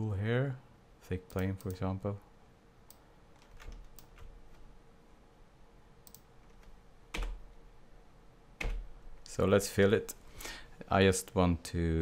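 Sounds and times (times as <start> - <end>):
low steady hum: 0.0 - 12.0
computer keyboard typing: 3.3 - 4.7, 6.1 - 7.5, 8.6 - 8.9
faint computer clicks: 6.0 - 6.3.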